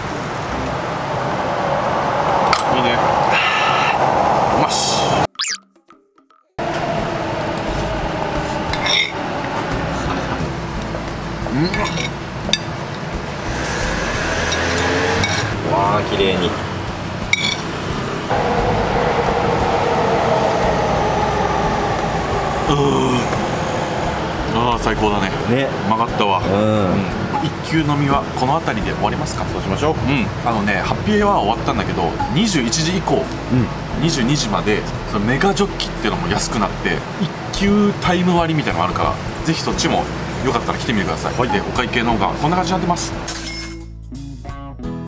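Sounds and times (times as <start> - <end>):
vehicle passing with rushing noise: 0.0 - 5.3, 6.6 - 11.5, 12.2 - 34.0.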